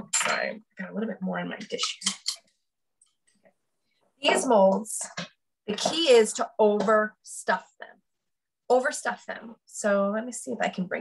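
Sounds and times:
woman's voice: 0.0 - 2.1, 4.2 - 8.0, 8.7 - 11.0.

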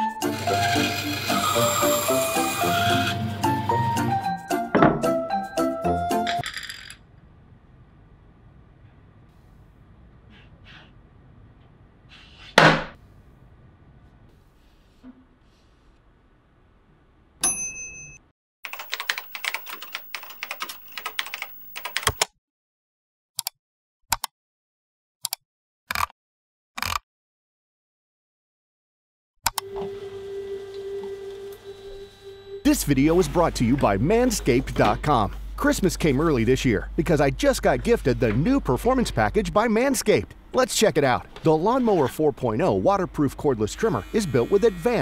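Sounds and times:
band saw cutting plywood: 0.0 - 4.1, 41.0 - 45.0
background music melody: 0.0 - 6.4
computer keyboard typing: 18.7 - 22.3.

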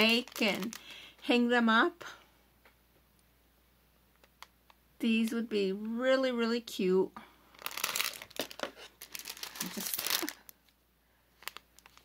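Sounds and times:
plastic bag crinkling: 0.0 - 1.2, 7.5 - 12.0.

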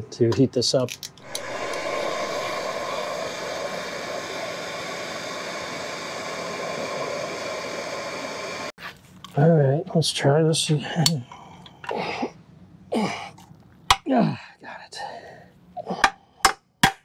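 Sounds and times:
hand torch flame hissing: 1.2 - 8.8.

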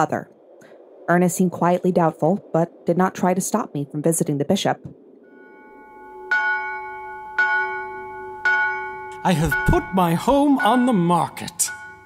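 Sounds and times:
faint hum: 0.0 - 12.0
bell strokes ringing: 5.2 - 12.0.

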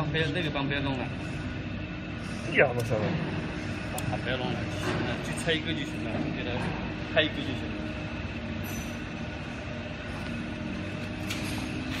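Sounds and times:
machinery humming: 0.0 - 12.0.

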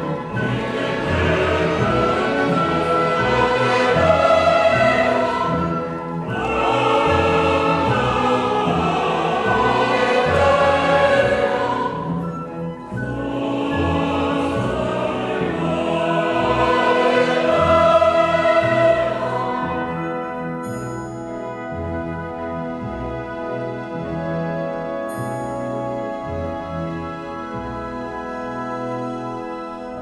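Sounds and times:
choir and orchestra: 0.0 - 30.0.

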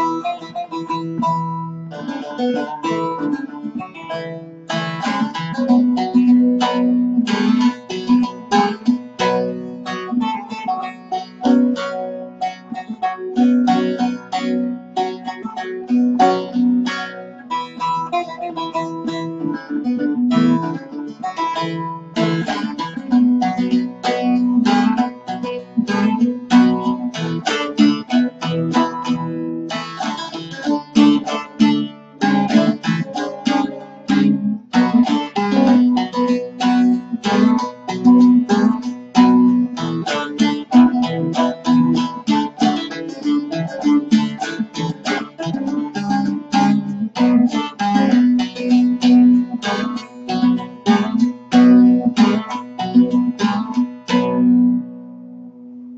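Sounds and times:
plucked long-necked lute melody: 0.0 - 55.9.

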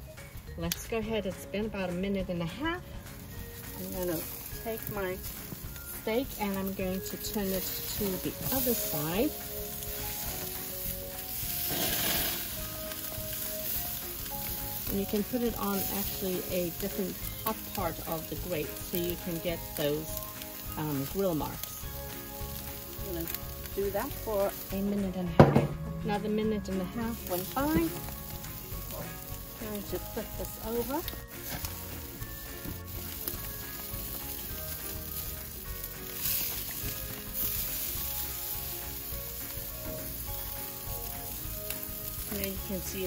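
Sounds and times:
steaks sizzling on a grill: 0.4 - 43.0.

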